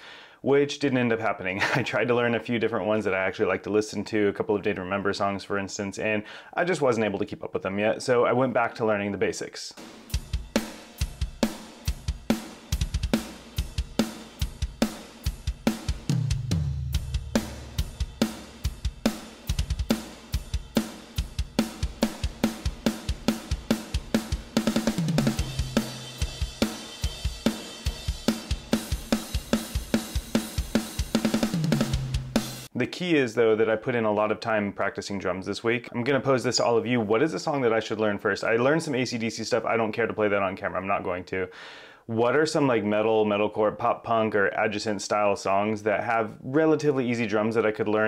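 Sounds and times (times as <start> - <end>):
electronic drum kit beat: 9.8 - 32.7
drum tom fills: 9.8 - 32.8.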